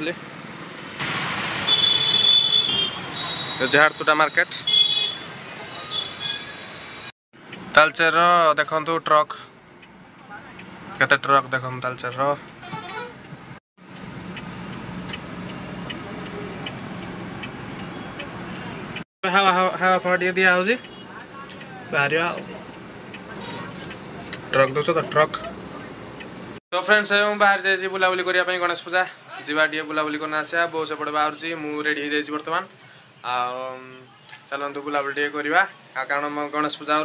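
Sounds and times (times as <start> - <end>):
car engine and road noise: 0.0 - 26.6
street traffic: 0.0 - 37.0
turn signal ticking: 7.4 - 7.9, 9.3 - 19.0, 20.0 - 26.6.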